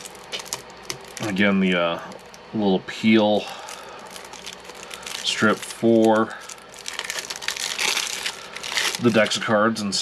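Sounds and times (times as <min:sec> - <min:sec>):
plastic shrink wrap crinkling: 0:00.0 - 0:02.5, 0:03.4 - 0:09.5.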